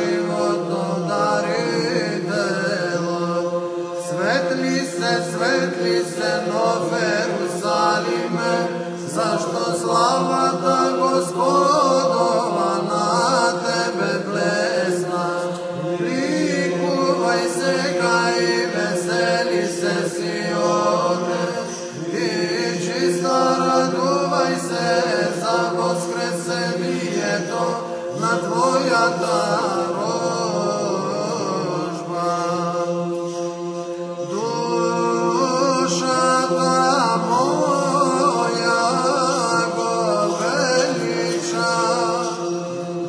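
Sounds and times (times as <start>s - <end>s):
held vocal drone: 0.0s - 43.0s
man chanting melismatic line: 0.0s - 43.0s.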